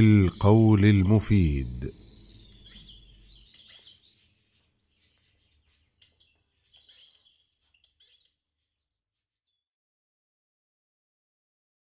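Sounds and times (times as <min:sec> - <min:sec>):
faint bird chirps: 0:00.0 - 0:09.7.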